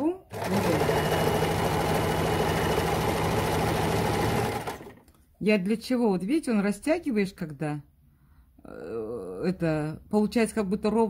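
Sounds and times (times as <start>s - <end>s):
electric sewing machine running: 0.3s - 5.0s.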